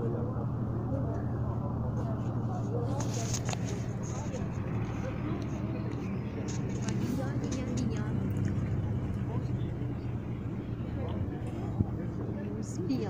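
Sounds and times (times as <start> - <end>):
low engine hum: 0.0 - 13.0
people talking indistinctly: 0.0 - 13.0.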